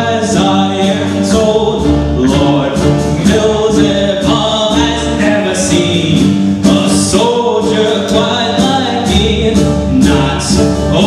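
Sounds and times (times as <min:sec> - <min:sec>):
drum and cymbal hits: 0:00.0 - 0:11.0
live rock band playing: 0:00.0 - 0:11.0
person singing: 0:00.0 - 0:11.0.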